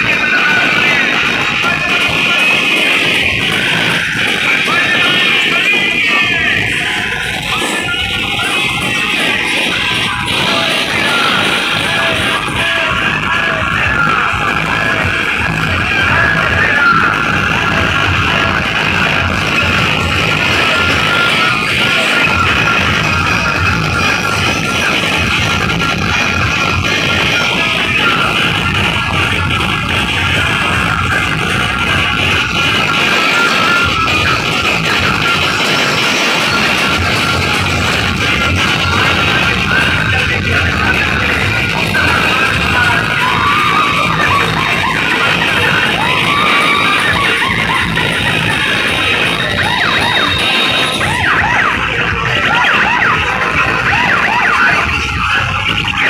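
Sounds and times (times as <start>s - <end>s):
loud dj music: 0.0s - 56.0s.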